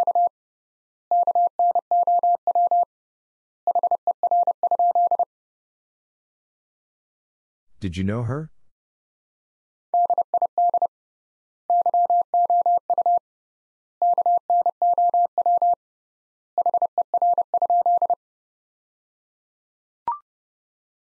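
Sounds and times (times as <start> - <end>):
morse code beeping: 11.7 - 13.2.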